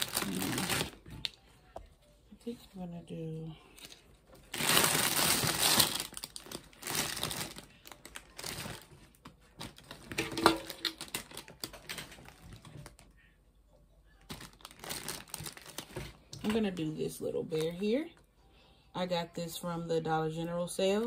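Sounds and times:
plastic wrapping crinkling: 0.0 - 1.4, 3.8 - 13.1, 14.2 - 16.8.

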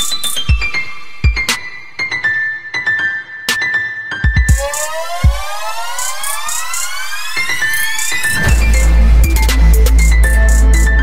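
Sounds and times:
synth sweep rising in pitch: 4.8 - 11.0.

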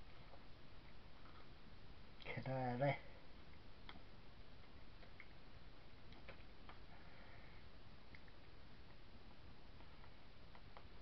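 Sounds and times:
soft rustle: 0.0 - 11.0
steady low hiss: 0.0 - 11.0.

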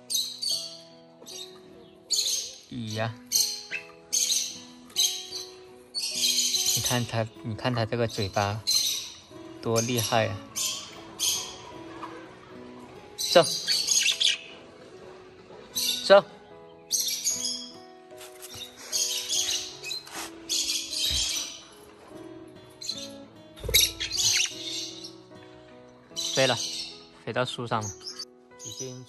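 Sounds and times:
bird shrill chirping: 0.0 - 7.3, 8.1 - 11.8, 13.2 - 14.6, 15.8 - 21.7, 22.8 - 25.4, 26.1 - 27.1, 27.8 - 29.0
soft background music: 0.0 - 29.0
bird screeching harshly: 23.6 - 25.1.

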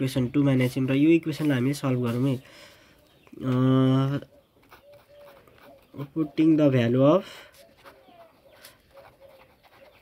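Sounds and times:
pen writing on paper: 4.6 - 5.9, 7.6 - 10.0.

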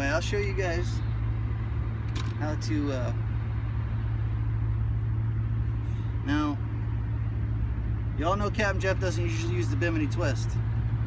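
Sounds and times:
low-pitched drone with rumble: 0.0 - 11.0.

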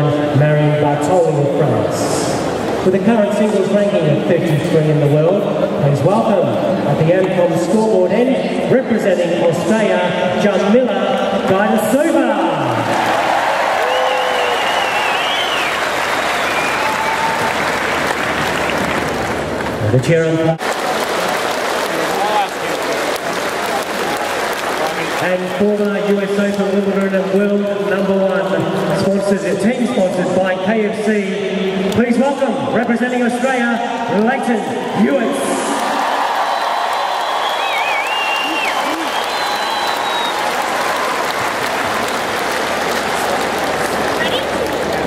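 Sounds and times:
crowd applauding: 12.6 - 29.1, 35.3 - 45.0
wavering whistle from crowd: 13.8 - 17.5, 36.6 - 40.6.

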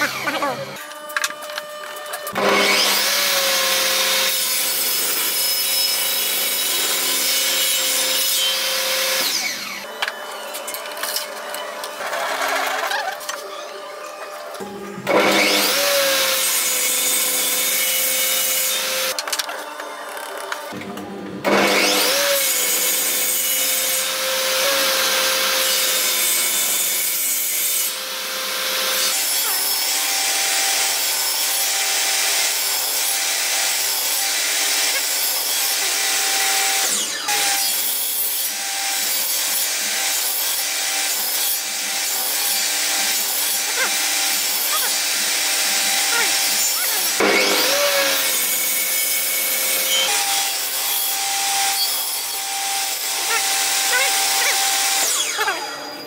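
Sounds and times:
table saw cutting wood: 0.0 - 56.0.

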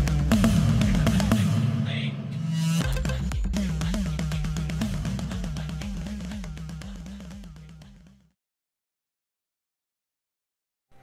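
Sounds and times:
music: 0.0 - 8.4.

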